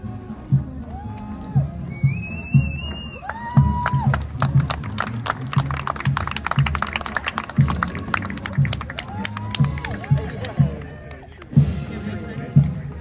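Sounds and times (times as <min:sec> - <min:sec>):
bass drum beats: 0:00.5 - 0:13.0
whistle-like tones: 0:01.8 - 0:03.4
spectators clapping: 0:02.9 - 0:11.6.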